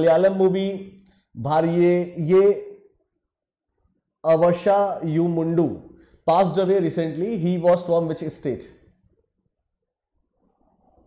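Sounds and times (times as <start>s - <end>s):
man speaking: 0.0s - 2.8s, 4.2s - 8.9s.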